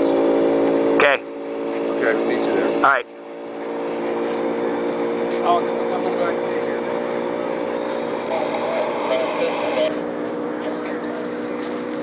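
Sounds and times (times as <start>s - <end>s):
engine idling: 0.0s - 12.0s
faint voices: 3.8s - 12.0s.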